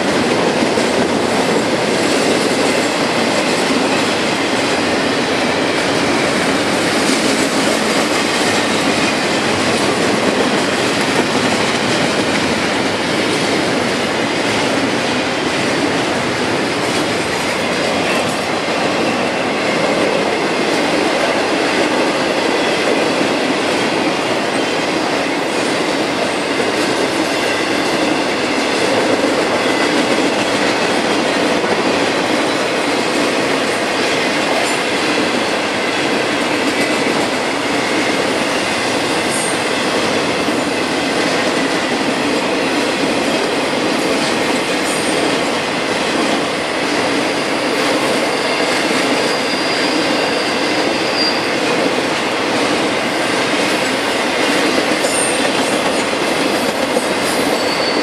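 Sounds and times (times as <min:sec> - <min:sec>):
freight train wheels rolling on rail: 0:00.0 - 0:58.0.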